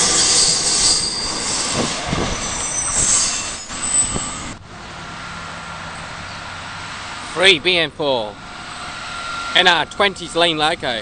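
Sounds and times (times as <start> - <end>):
train knocks: 0.0 - 4.6
wheel squeals: 0.0 - 4.6
freight train wagons rolling: 0.0 - 11.0.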